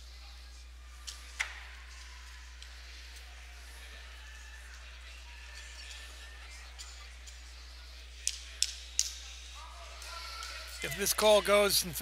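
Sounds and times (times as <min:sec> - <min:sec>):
man speaking: 0:10.8 - 0:12.0.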